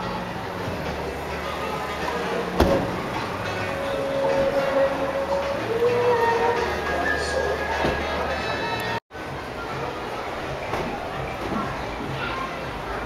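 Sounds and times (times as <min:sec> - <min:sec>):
background music: 0:00.0 - 0:10.6
indistinct voices: 0:00.0 - 0:13.0.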